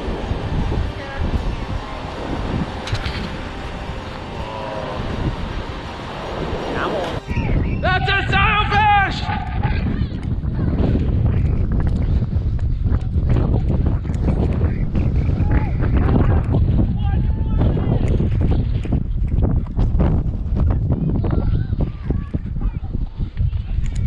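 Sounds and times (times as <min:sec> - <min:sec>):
wind buffeting microphone: 0:00.0 - 0:24.0
faint voices: 0:03.5 - 0:07.5.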